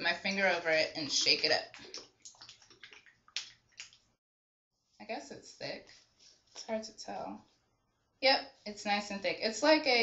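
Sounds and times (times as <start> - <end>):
liquid sloshing in shaken bottle: 0.1 - 4.2.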